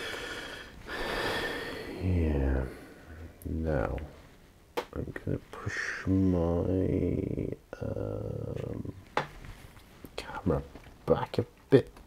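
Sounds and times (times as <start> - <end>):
man breathing through nose: 0.0 - 2.0.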